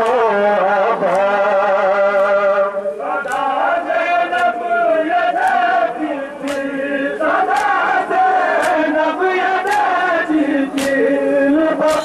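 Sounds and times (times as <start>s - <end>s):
men chanting together: 0.0s - 12.0s
chest beating slaps: 3.2s - 3.5s, 6.4s - 6.8s, 7.5s - 7.8s, 8.6s - 8.8s, 9.6s - 9.9s, 10.7s - 11.1s.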